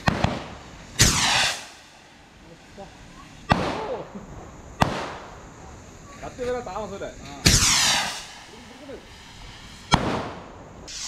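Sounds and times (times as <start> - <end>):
firework bang: 0.0 - 5.7, 7.4 - 11.0
rocket launching hiss: 0.0 - 11.0.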